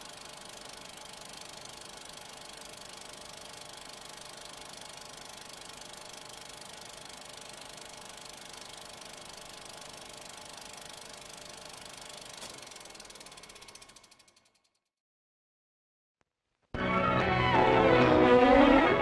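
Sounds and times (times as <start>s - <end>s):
film projector clattering: 0.0s - 14.8s.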